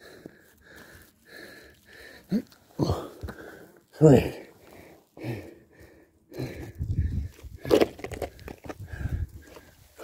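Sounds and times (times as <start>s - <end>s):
man breathing hard: 0.0s - 7.6s, 8.7s - 10.0s.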